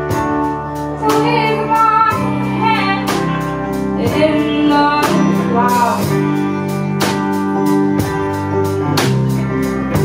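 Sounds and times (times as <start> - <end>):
bass guitar: 0.0 - 10.0
drums: 0.0 - 10.0
electric guitar: 0.0 - 10.0
woman singing: 1.0 - 6.3.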